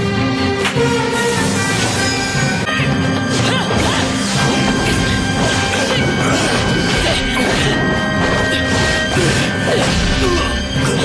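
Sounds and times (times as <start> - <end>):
fight background music: 0.0 - 11.0.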